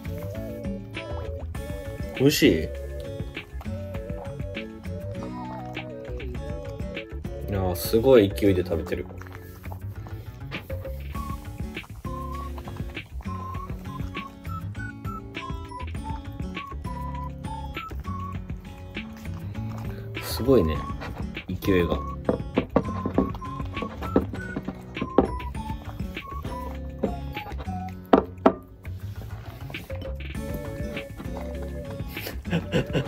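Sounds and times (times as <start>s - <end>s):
background music: 0.0s - 33.0s
dog chewing and lapping: 0.0s - 33.0s.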